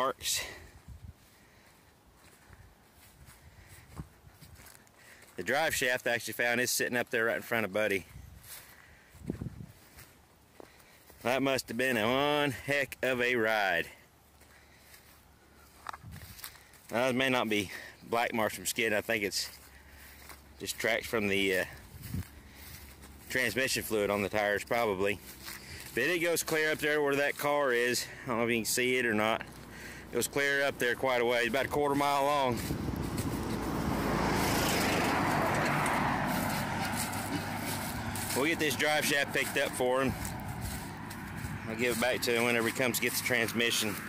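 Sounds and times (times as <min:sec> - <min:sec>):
vehicle passing at speed: 0:19.4 - 0:26.9, 0:27.9 - 0:44.0.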